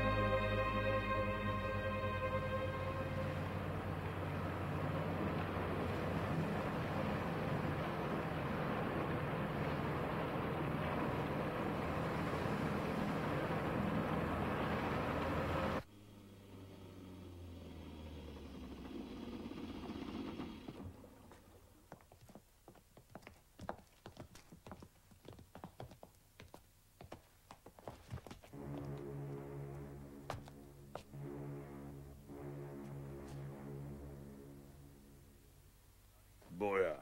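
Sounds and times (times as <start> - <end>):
heavy rain hiss: 0.0 - 15.8
low rumble: 0.0 - 21.5.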